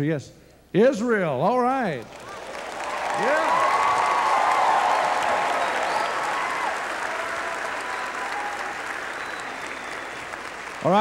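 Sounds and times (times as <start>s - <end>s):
congregation applauding: 2.0s - 11.0s.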